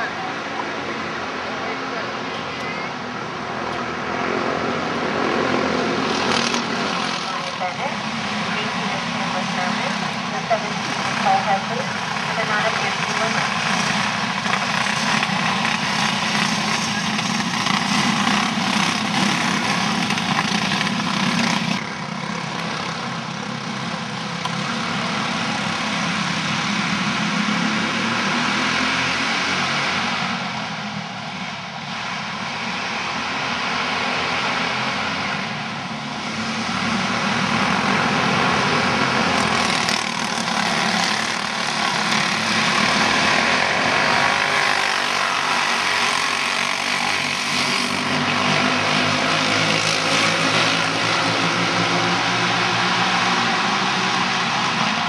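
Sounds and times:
kart engines buzzing: 0:00.0 - 0:55.0.

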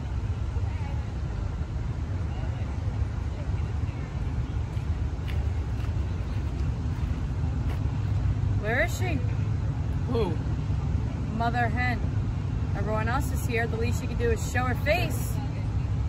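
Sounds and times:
distant road traffic rumble: 0:00.0 - 0:16.0.

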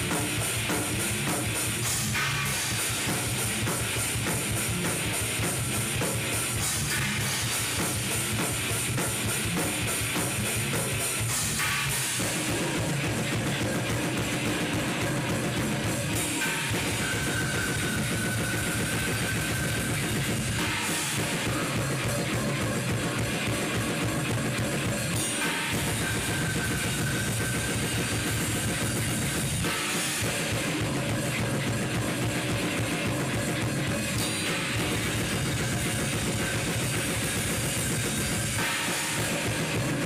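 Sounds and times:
death metal band playing: 0:00.0 - 0:40.0
fast dense drumming: 0:00.0 - 0:40.0.

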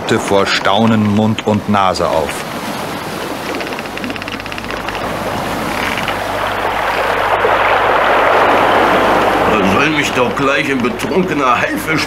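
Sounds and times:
waves washing: 0:00.0 - 0:12.0
wind: 0:00.0 - 0:12.0
ratchet-like mechanical clicks: 0:03.4 - 0:06.2.

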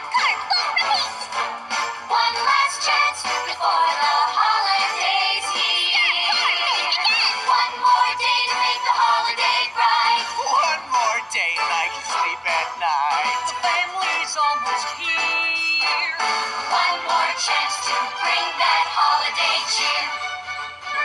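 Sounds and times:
voices singing with vibrato: 0:00.0 - 0:20.4
instrumental backing music: 0:00.0 - 0:21.0.

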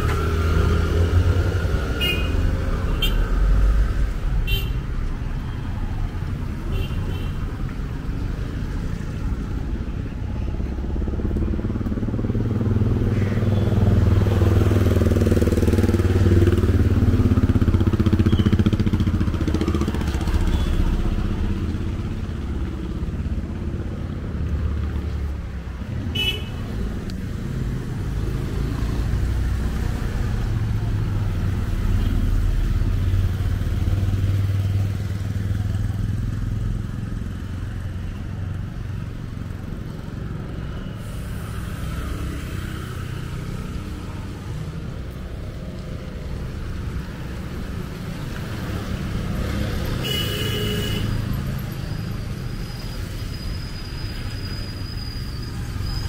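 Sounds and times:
vehicles passing on wet road: 0:00.0 - 0:56.0.

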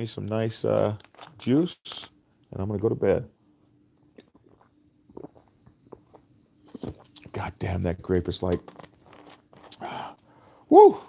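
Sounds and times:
faint steady hum: 0:00.0 - 0:11.0
person gulping juice: 0:04.0 - 0:07.3, 0:08.8 - 0:10.2.

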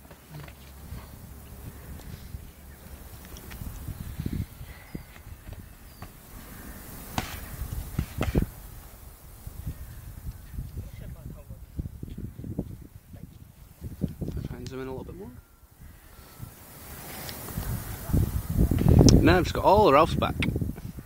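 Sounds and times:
low microphone rumble: 0:00.0 - 0:21.0.

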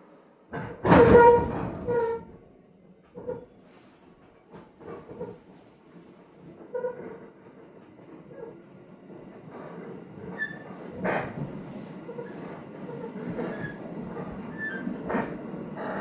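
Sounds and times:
train rumble: 0:03.1 - 0:16.0.

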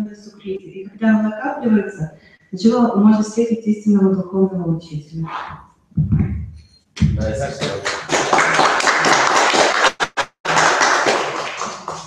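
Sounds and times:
audience applauding: 0:07.2 - 0:12.0.

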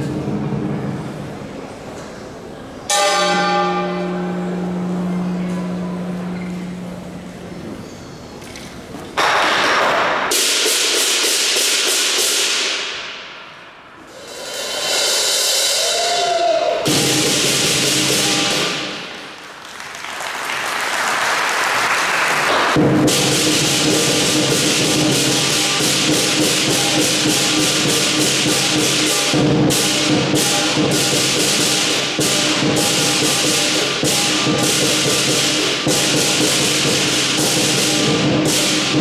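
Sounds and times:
large drum: 0:00.0 - 0:01.6, 0:14.1 - 0:19.4, 0:22.5 - 0:39.0
clashing cymbals: 0:02.9 - 0:07.6, 0:10.0 - 0:19.4, 0:22.5 - 0:39.0
gong: 0:02.9 - 0:07.6, 0:16.8 - 0:19.3, 0:22.8 - 0:39.0.

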